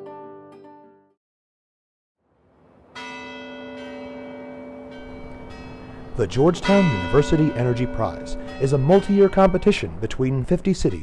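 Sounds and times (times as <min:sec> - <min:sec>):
tower bell ringing: 0:02.9 - 0:11.0.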